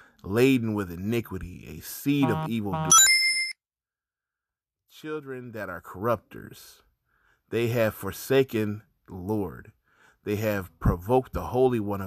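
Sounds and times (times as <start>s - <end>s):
high electronic ding: 2.2s - 3.6s.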